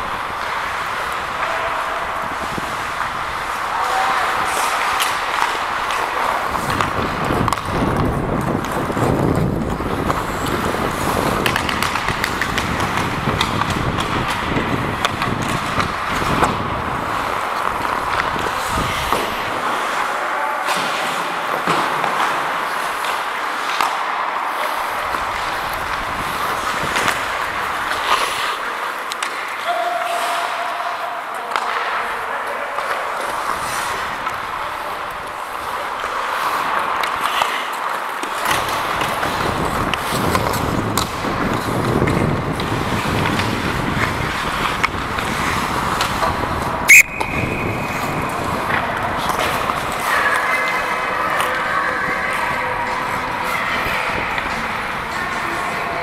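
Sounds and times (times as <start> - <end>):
players' voices: 0.0 - 56.0
skates scraping on ice: 0.0 - 56.0
stick and puck sounds: 0.0 - 56.0
referee's whistle blast: 46.9 - 47.8.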